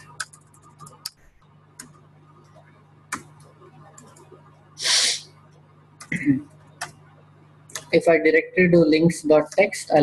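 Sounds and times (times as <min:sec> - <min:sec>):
computer keyboard keystrokes: 0:00.0 - 0:01.2, 0:01.8 - 0:02.0, 0:03.1 - 0:04.3, 0:06.8 - 0:07.0
low electrical hum: 0:00.0 - 0:10.0.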